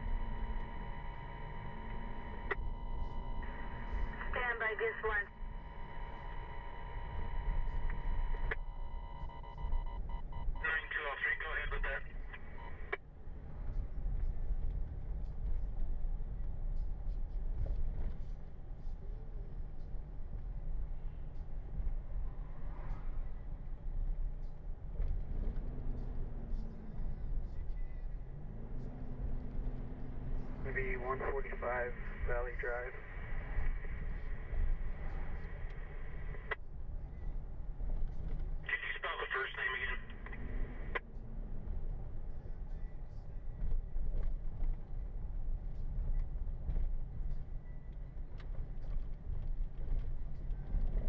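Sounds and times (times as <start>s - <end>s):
garbled radio transmission: 0.0s - 8.6s, 10.4s - 13.0s, 30.5s - 36.6s, 38.6s - 41.0s
dispatch radio tone: 0.0s - 13.0s, 30.5s - 36.6s, 38.7s - 41.0s
car cabin road and engine rumble: 0.0s - 51.0s.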